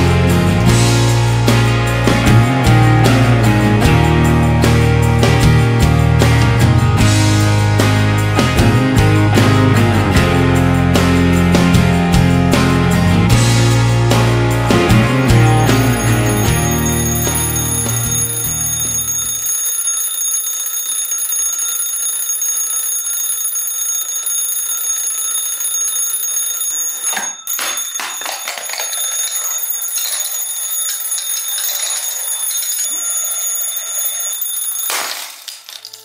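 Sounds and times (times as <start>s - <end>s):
mechanical alarm clock ringing: 15.0s - 36.0s.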